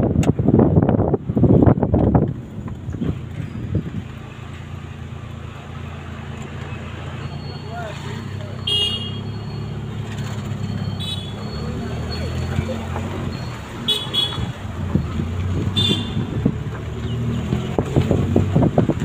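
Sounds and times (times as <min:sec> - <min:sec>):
wind buffeting microphone: 0:00.0 - 0:04.5, 0:14.4 - 0:19.0
vehicle engine running: 0:00.1 - 0:19.0
short horn toots: 0:08.6 - 0:09.4.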